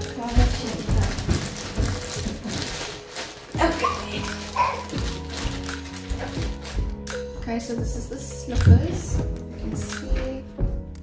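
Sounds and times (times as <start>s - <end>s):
plastic bag crinkling: 0.0s - 7.3s.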